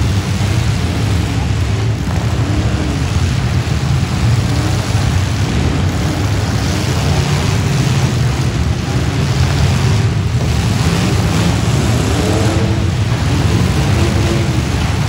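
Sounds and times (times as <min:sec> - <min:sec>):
engines revving: 0:00.0 - 0:15.0.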